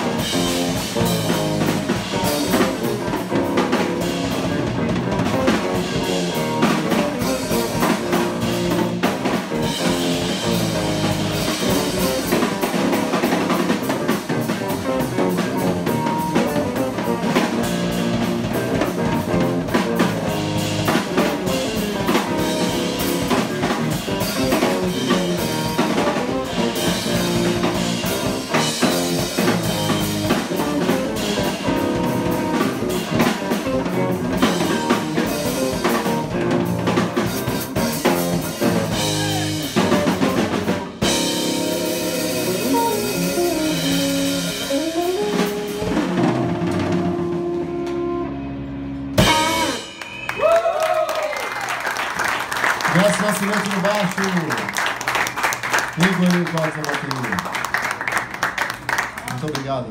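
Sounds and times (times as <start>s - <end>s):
drum kit with cymbals: 0.0s - 48.3s, 49.2s - 50.6s
electric bass: 0.0s - 51.0s
electric guitar: 0.0s - 53.7s.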